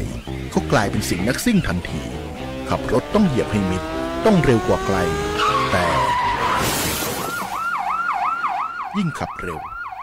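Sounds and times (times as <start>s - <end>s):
emergency vehicle siren: 3.8s - 10.0s
tyres squealing: 4.4s - 7.5s.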